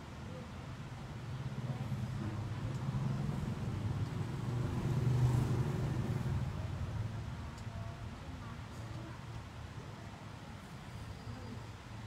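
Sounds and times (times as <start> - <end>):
passing vehicle engine rumble: 1.4 - 7.5.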